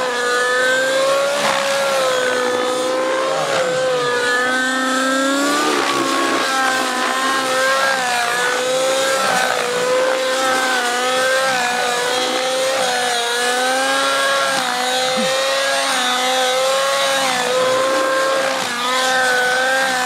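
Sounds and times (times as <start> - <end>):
model helicopter engine at high speed: 0.0 - 20.0
rotor drivetrain whine: 0.0 - 20.0.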